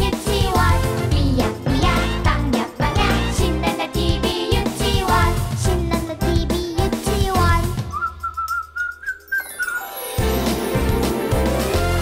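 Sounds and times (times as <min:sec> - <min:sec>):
whistled sliding note: 0:07.9 - 0:10.3.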